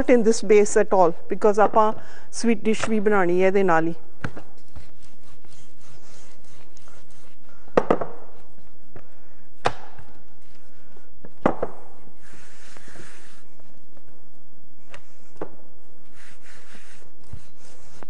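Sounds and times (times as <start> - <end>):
rolling pin rubbing dough: 4.6 - 7.5, 16.0 - 18.0
rubbing hiss: 16.1 - 18.0.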